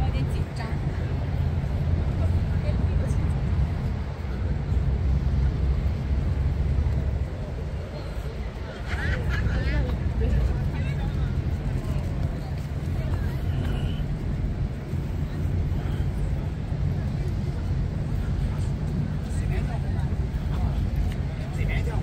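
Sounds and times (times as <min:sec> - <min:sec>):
passers-by talking: 0:00.0 - 0:22.0
road traffic rumble: 0:00.0 - 0:22.0.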